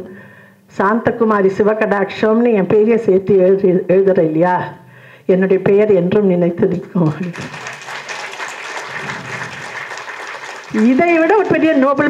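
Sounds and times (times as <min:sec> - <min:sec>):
audience applauding: 0:07.2 - 0:12.0.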